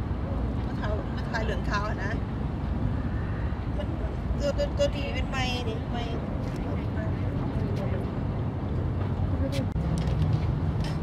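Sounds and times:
people talking: 0:00.7 - 0:02.2, 0:03.8 - 0:08.1, 0:09.3 - 0:09.8.

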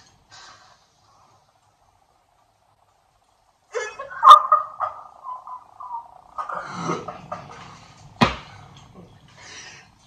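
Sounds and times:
men laughing: 0:03.7 - 0:07.7.

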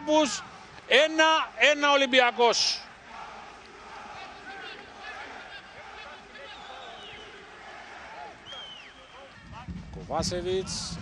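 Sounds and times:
distant shouts and calls: 0:00.0 - 0:09.7
stadium crowd hiss: 0:00.0 - 0:11.0.

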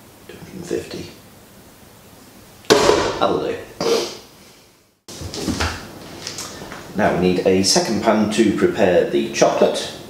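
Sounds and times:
sharp knock: 0:02.7 - 0:04.2
man speaking: 0:03.1 - 0:03.7, 0:07.0 - 0:10.0.

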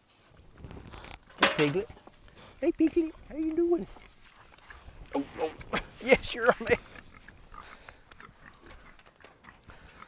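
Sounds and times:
pigs grunting and snuffling: 0:00.6 - 0:10.0.

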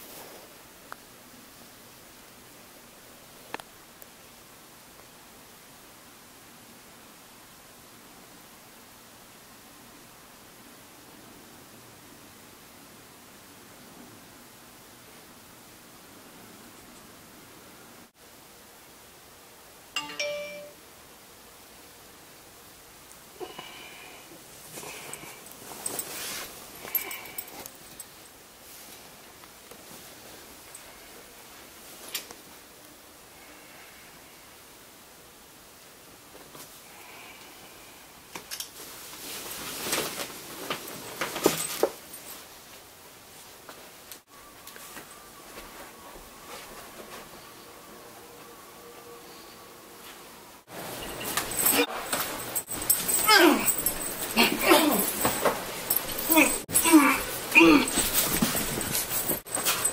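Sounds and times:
phone text alert chime: 0:20.0 - 0:20.8
bedding rustling: 0:24.5 - 0:32.6, 0:38.8 - 0:43.9, 0:50.7 - 0:59.9.

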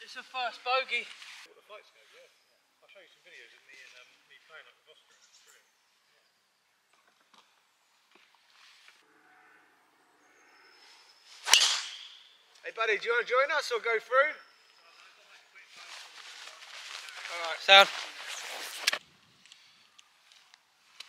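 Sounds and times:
golf club swish: 0:11.4 - 0:12.3
clubhead cracking ball: 0:11.5 - 0:12.2.

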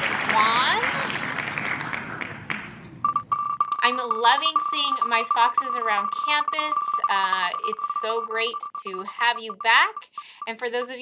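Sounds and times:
applause sound effect: 0:00.0 - 0:02.8.

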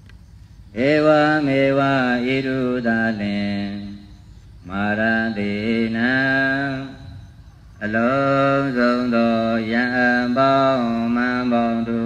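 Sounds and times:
man chanting in long held notes: 0:00.7 - 0:12.0.

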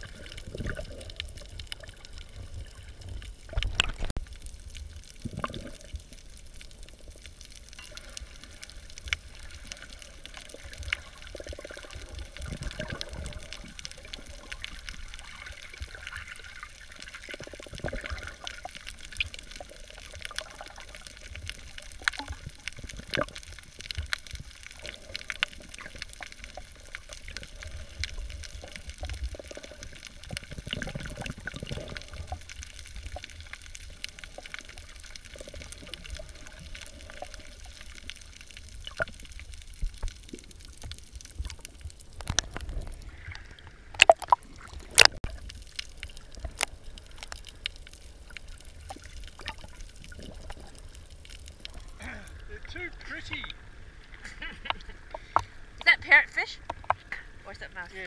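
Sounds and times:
underwater water wash: 0:00.0 - 0:58.0
water splashing: 0:00.0 - 0:58.0
sharp underwater clicks: 0:03.1 - 0:52.0, 0:56.6 - 0:57.2.

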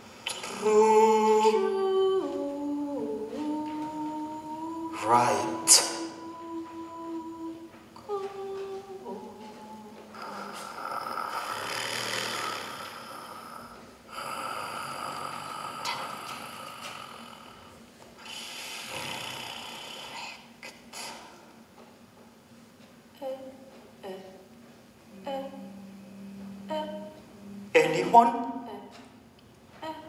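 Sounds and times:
breathy hissing sounds: 0:00.0 - 0:01.7, 0:05.0 - 0:06.2, 0:10.1 - 0:21.6
voices humming long notes: 0:00.0 - 0:19.0, 0:25.1 - 0:28.8.

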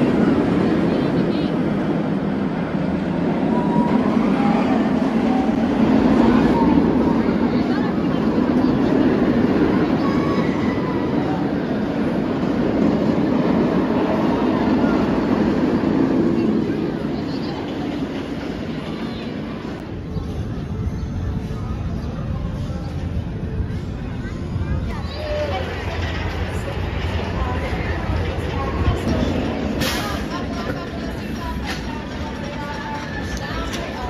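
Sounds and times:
voices: 0:00.0 - 0:34.0
roller coaster on wooden track: 0:25.0 - 0:34.0.

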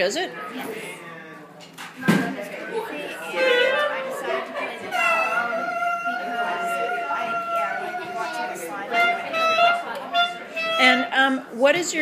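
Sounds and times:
voices chattering: 0:00.0 - 0:12.0
wind instrument holding long notes: 0:03.1 - 0:11.5.

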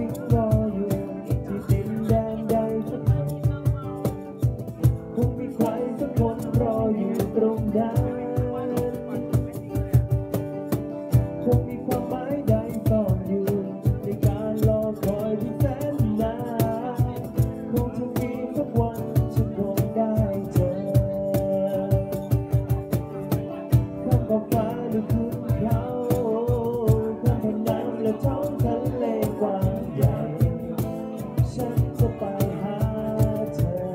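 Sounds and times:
acoustic guitar strumming: 0:00.0 - 0:33.9
man singing: 0:00.0 - 0:33.9
steady percussive beat: 0:00.0 - 0:33.9.

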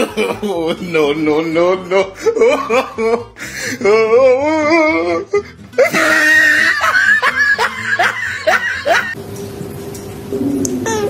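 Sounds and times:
person laughing in high squeals: 0:04.5 - 0:09.2.

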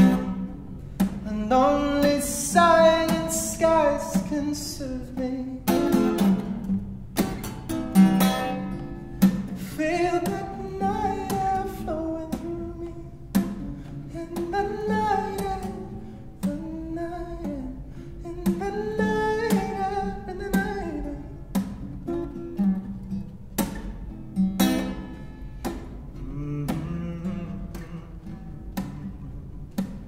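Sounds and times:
acoustic guitar picked and strummed: 0:00.0 - 0:30.0
man's wordless singing: 0:01.2 - 0:05.8, 0:09.6 - 0:13.3, 0:14.0 - 0:21.3, 0:26.2 - 0:28.4.

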